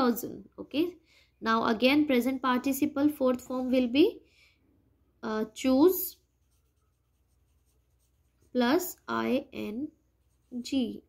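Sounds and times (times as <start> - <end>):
pencil writing on paper: 6.3 - 8.5.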